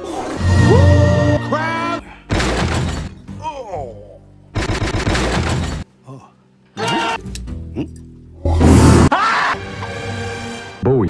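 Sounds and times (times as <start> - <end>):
loud crash: 8.6 - 9.1.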